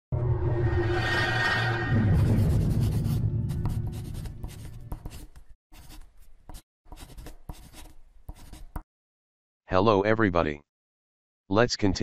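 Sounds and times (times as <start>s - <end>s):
deep opening sound: 0.1s - 4.4s
marker scribbling on board: 2.8s - 8.9s.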